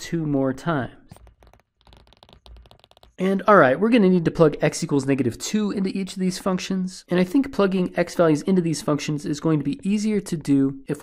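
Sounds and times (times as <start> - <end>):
stylus tapping and scratching on tablet: 0.7 - 3.5.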